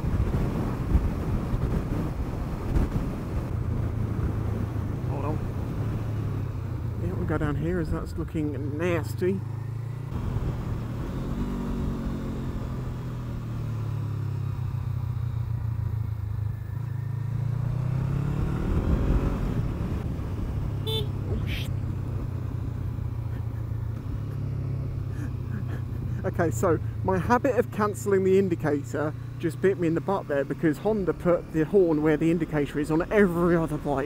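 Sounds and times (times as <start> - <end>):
wind noise: 0.0 - 8.1
motorcycle engine revving: 0.1 - 34.0
motorcycle horn: 20.8 - 21.6.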